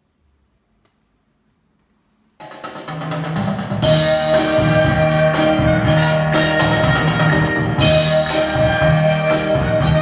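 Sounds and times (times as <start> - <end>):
soul record with drums and band: 2.4 - 10.0.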